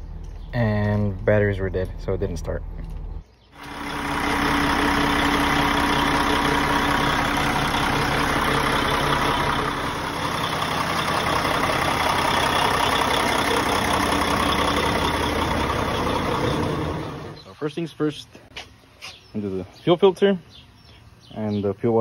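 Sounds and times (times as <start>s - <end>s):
diesel truck engine idling: 3.6s - 17.8s.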